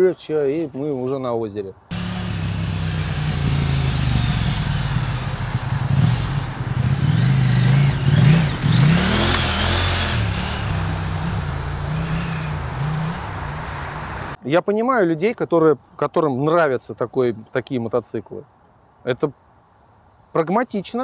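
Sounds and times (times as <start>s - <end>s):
motorcycle engine revving: 1.9s - 14.4s
rushing noise: 1.9s - 14.4s.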